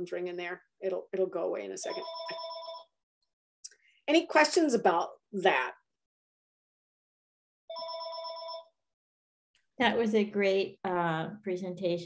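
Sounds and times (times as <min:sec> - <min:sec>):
phone ringing: 0:01.8 - 0:03.0, 0:07.7 - 0:08.9.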